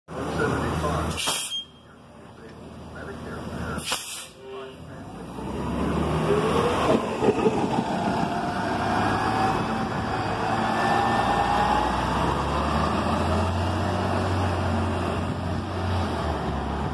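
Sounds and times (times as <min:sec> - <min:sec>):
bus accelerating: 0:00.1 - 0:16.9
rising engine whine: 0:04.9 - 0:16.9.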